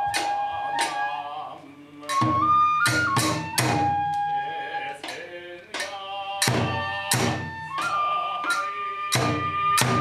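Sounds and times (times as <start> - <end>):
bamboo flute high note: 0.0 - 1.3, 2.1 - 4.8, 6.8 - 10.0
taiko drum strikes: 5.8 - 7.5.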